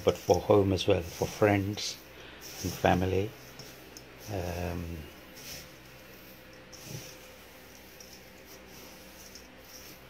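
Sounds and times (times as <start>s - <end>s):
dry tea leaves rustling: 0.0s - 10.0s
faint steady hum: 0.0s - 10.0s.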